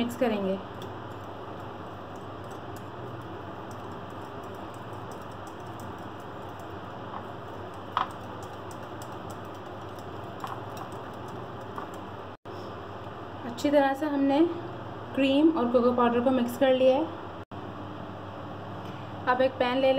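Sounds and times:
low background hum: 0:00.0 - 0:19.9
whisk ticking against bowl: 0:00.4 - 0:12.4
whisk stirring in a bowl: 0:00.6 - 0:12.4.

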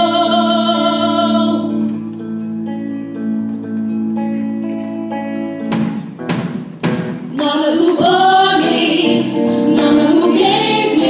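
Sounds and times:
live band: 0:00.0 - 0:11.0
women singing together: 0:07.3 - 0:11.0.

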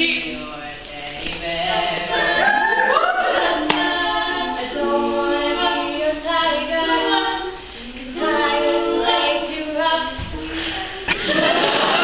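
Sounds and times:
female a cappella group singing: 0:00.0 - 0:12.0.

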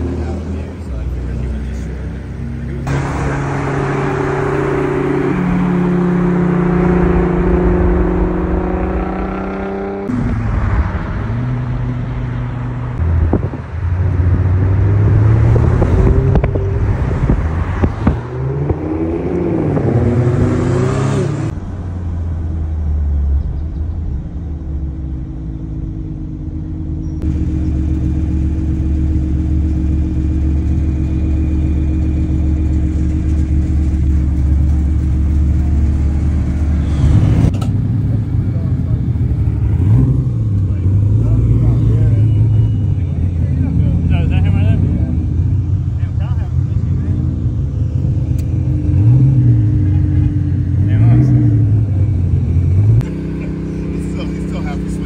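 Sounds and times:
car engine droning: 0:00.0 - 0:55.0
car engines revving: 0:00.0 - 0:55.0.

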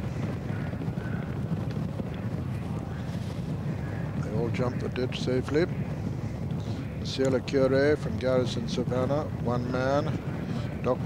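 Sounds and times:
horses galloping on turf: 0:00.0 - 0:11.0
wind on microphone: 0:00.0 - 0:11.0.

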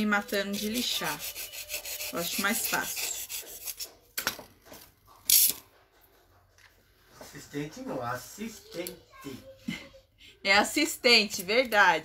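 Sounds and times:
knife slicing styrofoam: 0:00.0 - 0:03.9.

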